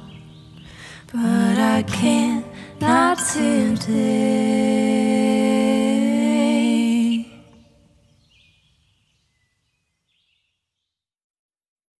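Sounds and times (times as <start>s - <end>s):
song reverb tail: 1.2s - 7.4s.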